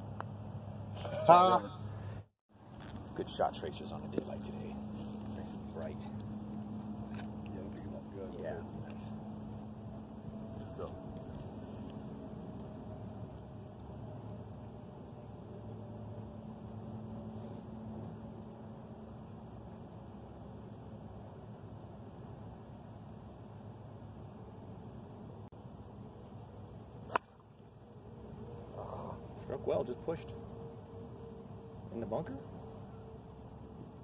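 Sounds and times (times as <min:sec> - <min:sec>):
golf club striking ball: 0:27.0 - 0:27.4.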